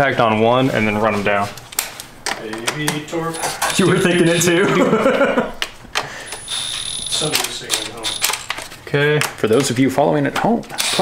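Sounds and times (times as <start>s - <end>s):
powered tool whir: 6.3s - 8.5s
metal tools clinking on bolts: 6.3s - 8.6s.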